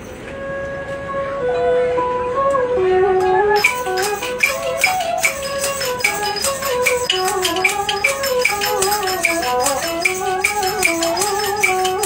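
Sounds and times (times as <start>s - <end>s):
instrumental ensemble slow melody: 0.0s - 12.0s.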